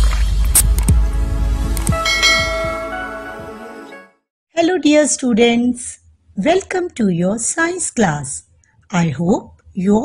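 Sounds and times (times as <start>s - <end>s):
bell-like chime: 2.0s - 3.4s.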